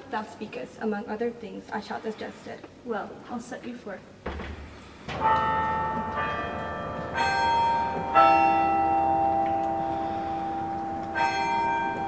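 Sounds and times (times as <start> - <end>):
bells ringing: 5.1 - 12.0.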